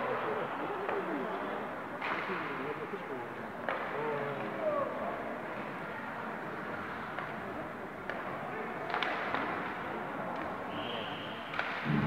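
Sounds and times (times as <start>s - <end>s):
crowd chatter: 0.0s - 12.0s
puck and sticks clacking: 3.6s - 4.0s, 8.0s - 8.3s, 8.9s - 10.5s.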